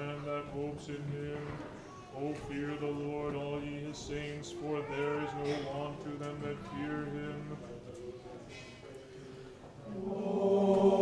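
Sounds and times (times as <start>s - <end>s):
choir singing chant: 9.9s - 11.0s.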